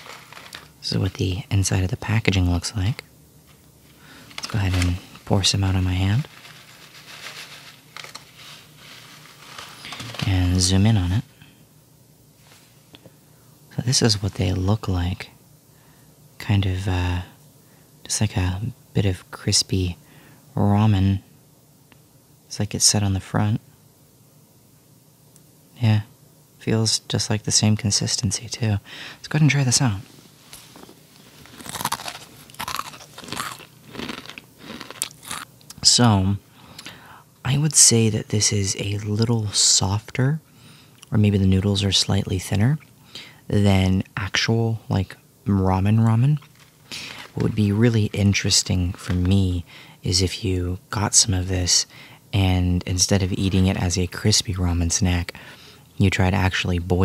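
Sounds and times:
plastic bag rustling: 0.0s - 1.0s, 3.4s - 10.7s, 30.1s - 35.4s, 46.4s - 49.4s
crunchy chewing: 30.7s - 35.7s.

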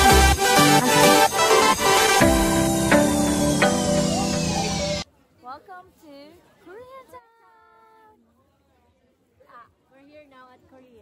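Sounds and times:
background music: 0.0s - 5.0s.

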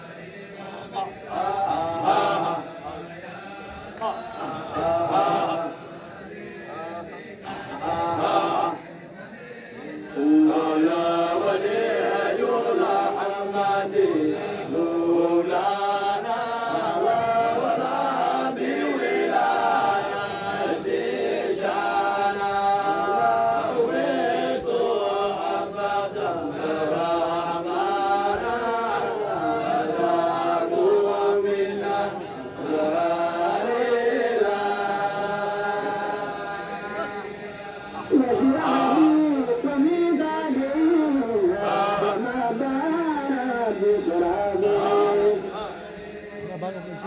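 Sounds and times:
men chanting: 0.0s - 47.0s.

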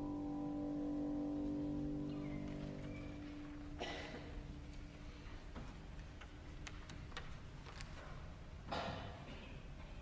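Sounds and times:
faint low background noise: 0.0s - 10.0s
small irregular clicks: 5.9s - 8.1s.

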